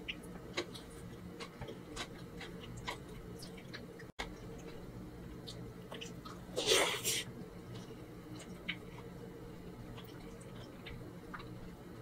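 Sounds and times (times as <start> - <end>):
wet chewing clicks: 0.0 - 4.8, 5.4 - 6.5, 9.9 - 11.7.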